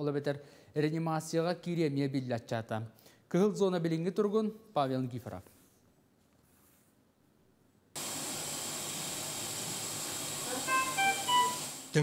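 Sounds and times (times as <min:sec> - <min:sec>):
ventilator hiss: 0:08.0 - 0:12.0
short electronic monitor beeps: 0:10.7 - 0:11.8.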